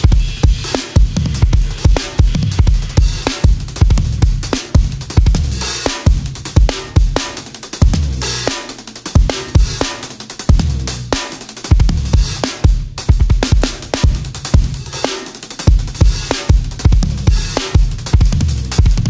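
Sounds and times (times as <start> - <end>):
kick drum and snare strokes: 0.0 - 19.0.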